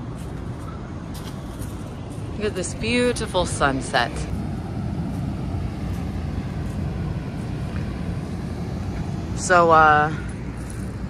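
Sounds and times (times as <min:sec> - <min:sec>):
distant city rumble: 0:00.0 - 0:11.0
wind: 0:00.0 - 0:11.0.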